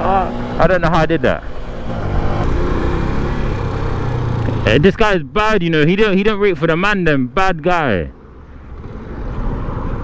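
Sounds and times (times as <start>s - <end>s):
motorcycle wind and engine rumble: 0.0s - 6.3s, 8.2s - 10.0s.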